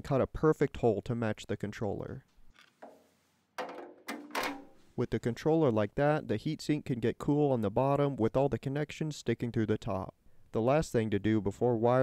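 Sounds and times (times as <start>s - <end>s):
scraping and handling noise: 2.5s - 5.0s
sharp knock: 2.8s - 4.8s.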